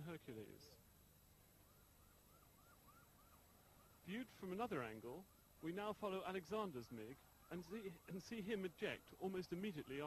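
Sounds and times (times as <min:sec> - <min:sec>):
faint siren whooping: 0:01.6 - 0:10.0.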